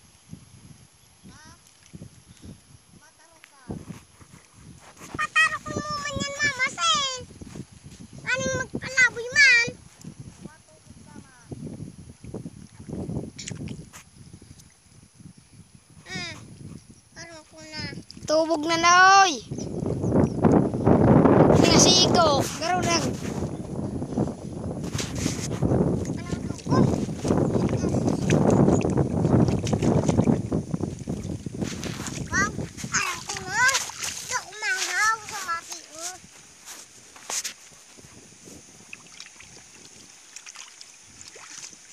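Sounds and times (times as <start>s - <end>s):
child babbling and calling: 5.2s - 7.3s, 8.3s - 9.8s, 26.2s - 27.0s, 32.3s - 36.2s
splashing in mud and water: 24.8s - 41.9s.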